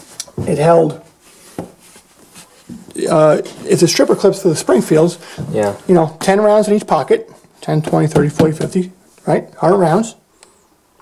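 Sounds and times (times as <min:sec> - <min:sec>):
soft rubbing of cloth belt: 0:01.1 - 0:04.1.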